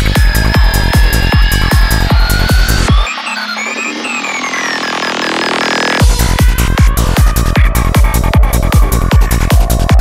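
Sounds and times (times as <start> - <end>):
falling synth sweeps: 0.0 - 7.1
buzzy synth drone: 0.0 - 10.0.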